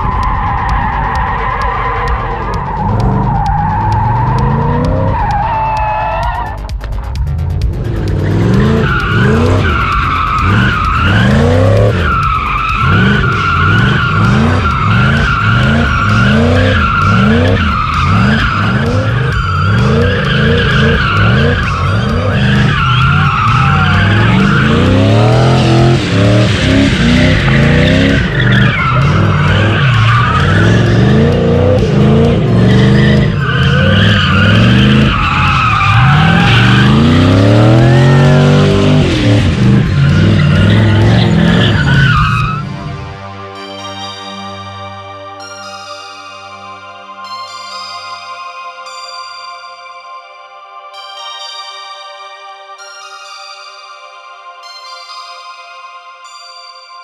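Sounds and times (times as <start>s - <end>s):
car engine revving: 0.0s - 43.2s
tyres squealing: 8.2s - 42.7s.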